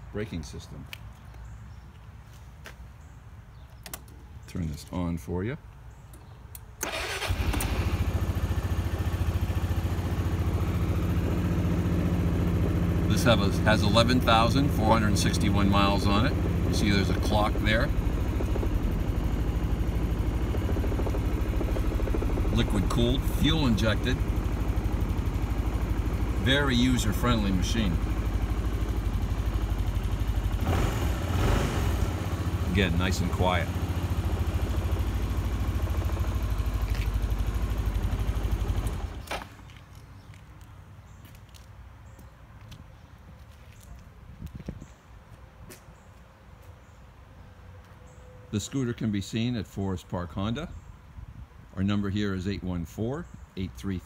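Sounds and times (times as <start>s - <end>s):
scooter engine idling: 6.8s - 39.6s.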